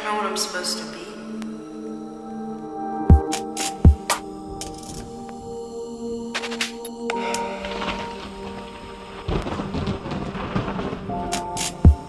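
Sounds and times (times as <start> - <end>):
crackling rain-like noise: 6.6 - 12.0
thunder-like rumble: 7.4 - 12.0.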